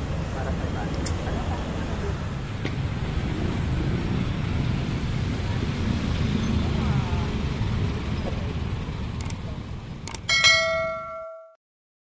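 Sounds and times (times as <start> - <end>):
notification bell ding: 10.3 - 11.6.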